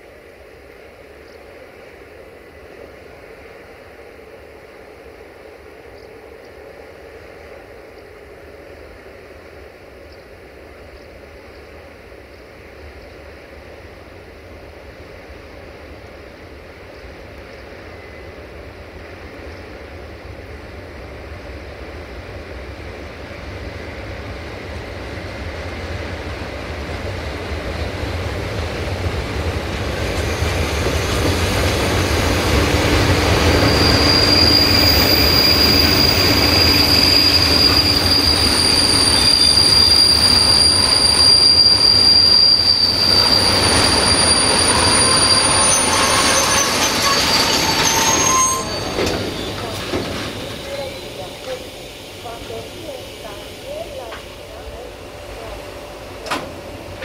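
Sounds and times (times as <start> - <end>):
freight train wheels rumbling on rail: 0.0 - 57.0
high-pitched wheel squeal: 33.2 - 51.7.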